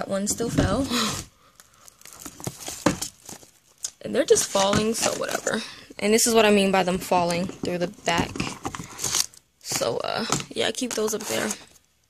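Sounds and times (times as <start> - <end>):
plastic packs rustling and crinkling: 0.1 - 12.0.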